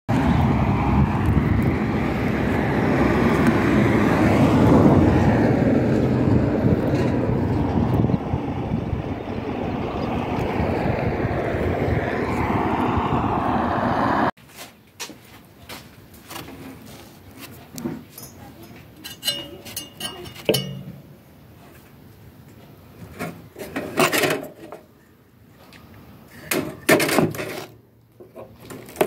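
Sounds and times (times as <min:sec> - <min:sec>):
passing motor vehicle roar: 0:00.1 - 0:14.4.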